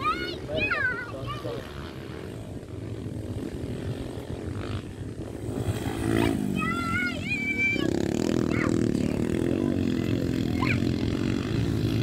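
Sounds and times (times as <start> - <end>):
dirt bike engines droning: 0.0 - 12.0.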